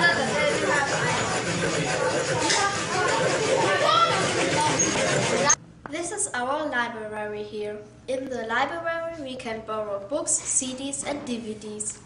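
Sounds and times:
children talking and calling out: 0.0s - 5.6s.

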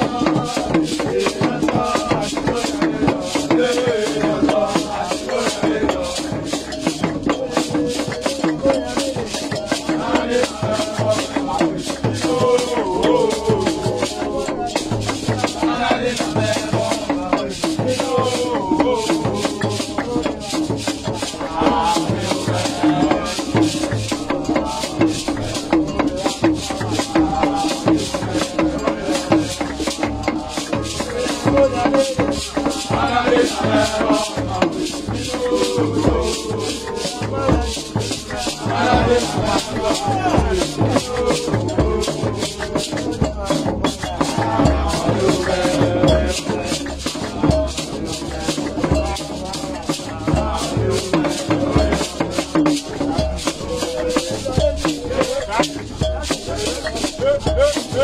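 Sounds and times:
group singing and chanting: 0.0s - 58.0s
hand drum beat: 0.0s - 58.0s
rattling shakers: 0.0s - 58.0s.

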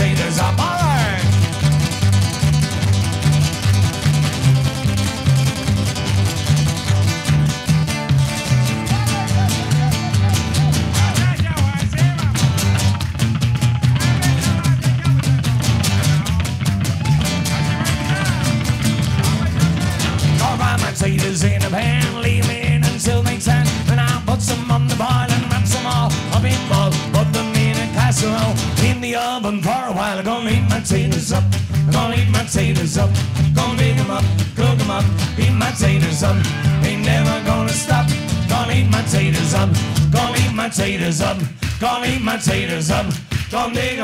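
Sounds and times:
upright bass line: 0.0s - 29.0s, 30.4s - 44.0s
strummed rhythm: 0.0s - 29.2s, 30.5s - 44.0s.

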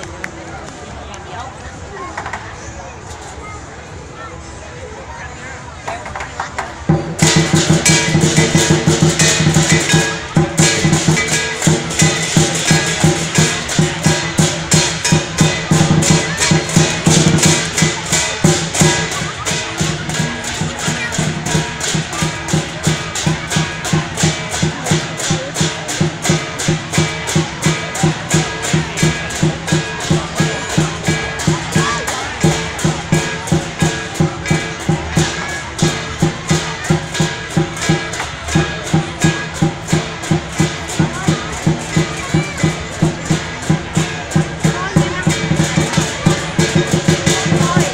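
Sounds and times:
drum: 5.8s - 47.9s
crashing cymbals: 6.9s - 47.9s.

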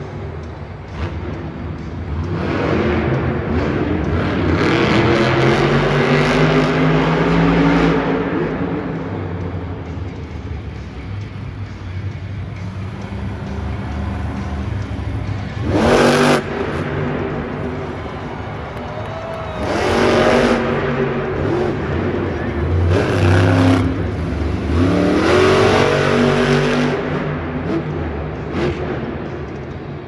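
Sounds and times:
truck engine revving: 0.5s - 29.9s.

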